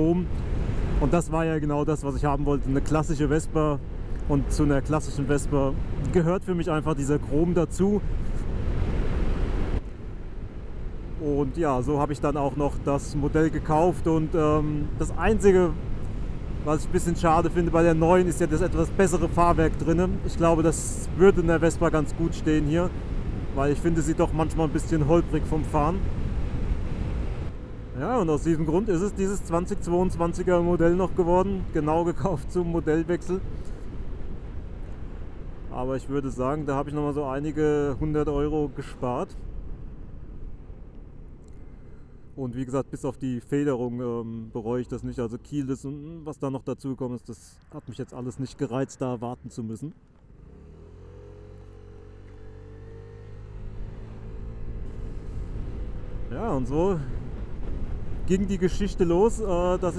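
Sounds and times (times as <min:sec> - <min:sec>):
wind rumbling over microphone: 0:00.0 - 0:41.0, 0:53.4 - 0:59.9
scooter engine running: 0:50.2 - 0:56.4.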